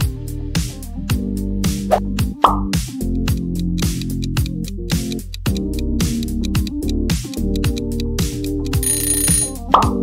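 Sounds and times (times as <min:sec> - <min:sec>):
upbeat background music: 0:00.0 - 0:10.0
pop sound effect: 0:02.4 - 0:02.7, 0:09.7 - 0:10.0.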